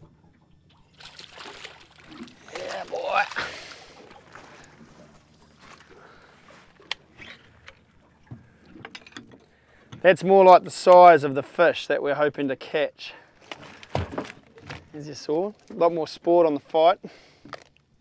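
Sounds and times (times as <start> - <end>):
water splashing: 0.0 - 8.7
water streaming off net: 0.9 - 4.7.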